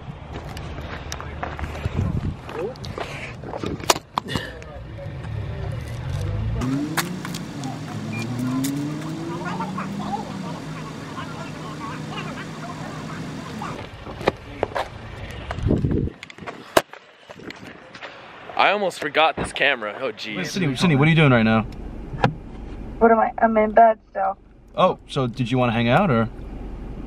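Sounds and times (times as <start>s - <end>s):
car engine revving: 4.9s - 15.5s
muffled voices: 7.5s - 15.6s.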